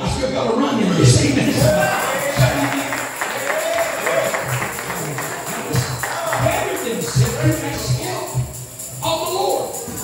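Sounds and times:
worship music: 1.2s - 10.0s
tambourine rhythm: 1.3s - 10.0s.

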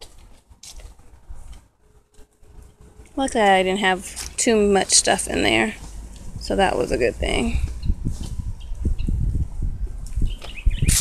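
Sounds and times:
faint rustling and handling noise: 0.0s - 8.8s
low rumble: 5.5s - 10.9s.

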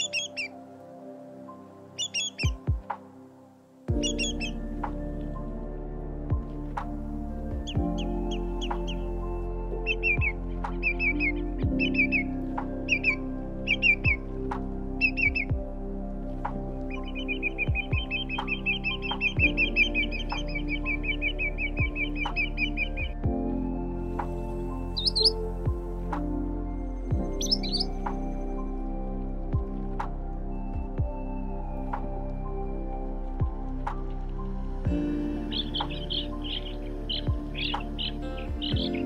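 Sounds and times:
bird calls and trills: 0.0s - 3.2s, 3.9s - 5.7s, 6.3s - 29.0s, 34.8s - 39.0s
soft background music: 0.0s - 39.0s.

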